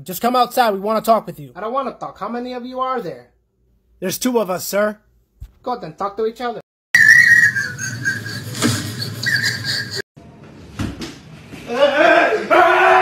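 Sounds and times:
high-pitched whistle-like squeal: 0:07.0 - 0:10.0
people yelling: 0:11.7 - 0:13.0.

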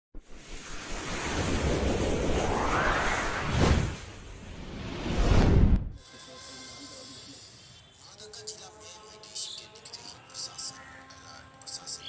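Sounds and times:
whoosh of rushing noise: 0:00.2 - 0:06.0.

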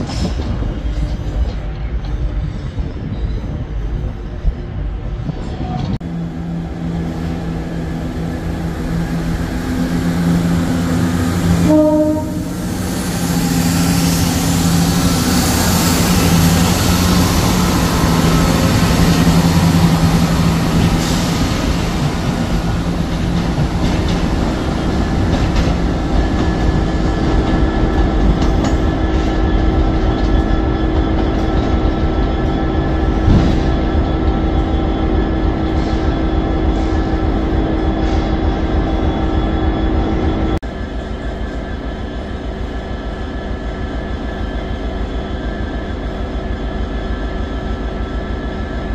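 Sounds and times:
diesel train engines droning: 0:00.0 - 0:48.9
train horn: 0:10.2 - 0:13.6.

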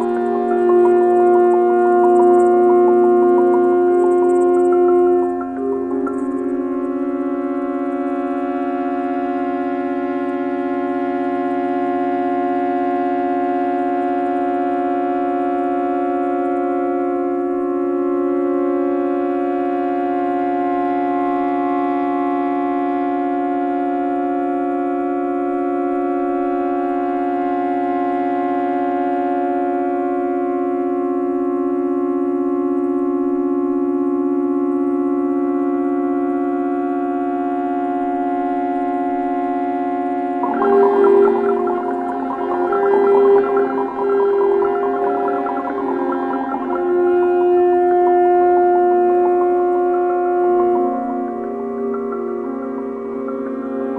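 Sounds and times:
pulsing synthesizer chord: 0:00.0 - 0:32.2, 0:34.4 - 0:53.9.

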